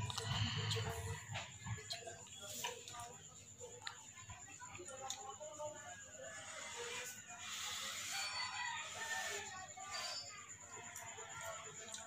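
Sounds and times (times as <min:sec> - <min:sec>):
rooster crowing: 0:07.8 - 0:09.7.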